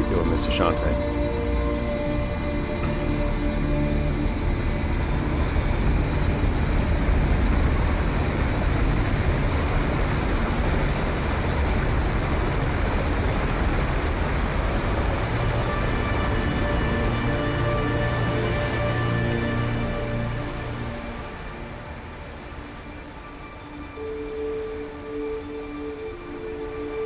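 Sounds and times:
faint musical tones: 0:00.0 - 0:27.0
deep rumble of sound design: 0:01.1 - 0:21.4.

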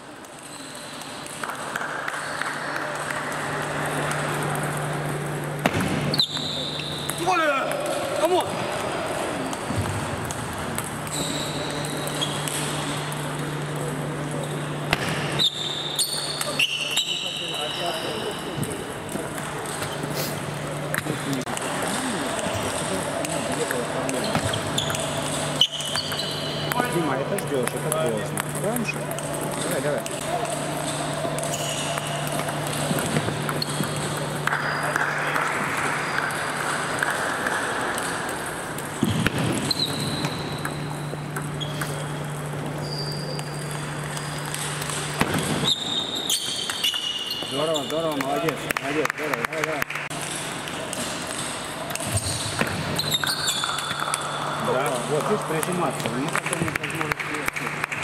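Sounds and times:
table tennis balls clicking: 0:18.6 - 0:45.8, 0:50.2 - 0:58.0.

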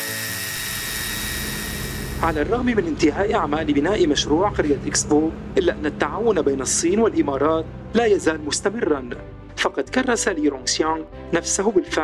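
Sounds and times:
angle grinder cutting steel: 0:00.0 - 0:07.0.

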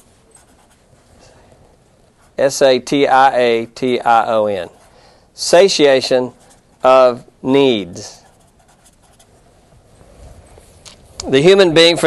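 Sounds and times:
hand writing scratching: 0:00.0 - 0:01.1, 0:06.3 - 0:07.0, 0:08.0 - 0:09.4
room hum: 0:00.0 - 0:12.0.

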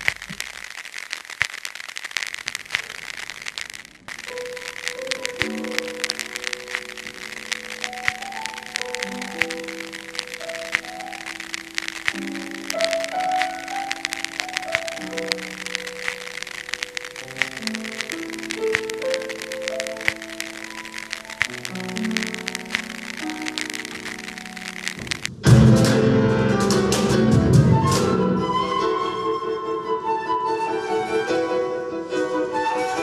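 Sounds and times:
light ticking drum kit: 0:00.0 - 0:28.0
record surface crackle and pops: 0:00.0 - 0:28.4
grand piano: 0:00.0 - 0:33.0
flute: 0:26.3 - 0:33.0.

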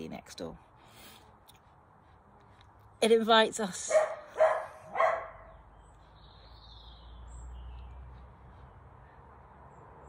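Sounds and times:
dog barking: 0:03.9 - 0:05.6.

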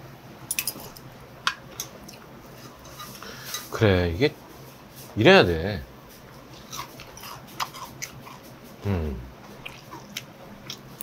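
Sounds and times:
person chewing food: 0:06.5 - 0:11.0.

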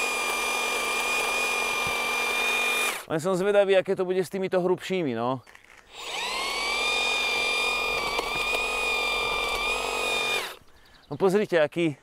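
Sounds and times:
blades cutting branches: 0:00.0 - 0:03.1, 0:05.4 - 0:10.7
hedge trimmer whining: 0:00.0 - 0:03.1, 0:05.6 - 0:10.8.

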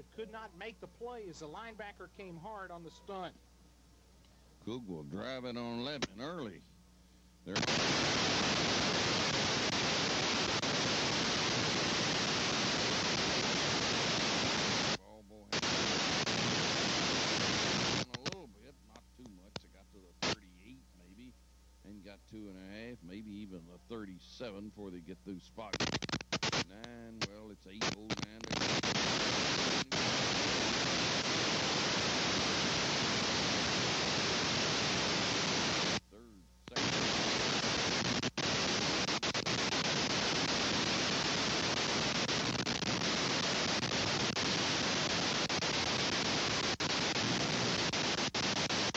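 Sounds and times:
videotape static hiss: 0:00.0 - 0:48.9.

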